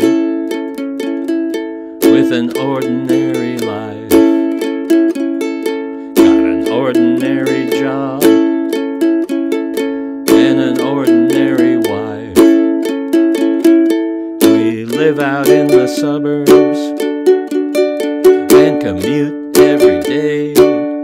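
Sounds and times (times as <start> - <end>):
ukulele strumming: 0.0 - 21.0.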